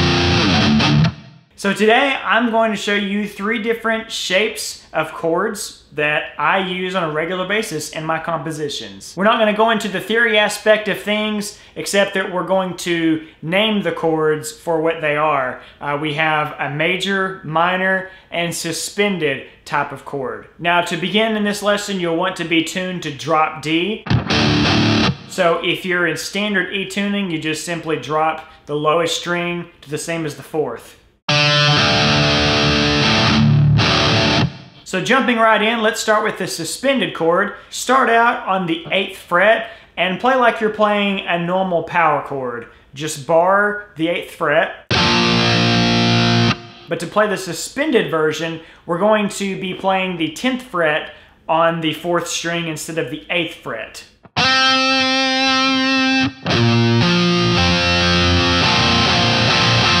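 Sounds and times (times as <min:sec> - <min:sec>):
distorted electric guitar chords: 0:00.0 - 0:01.5, 0:24.0 - 0:25.4, 0:31.3 - 0:34.8, 0:44.9 - 0:46.9, 0:54.4 - 1:00.0.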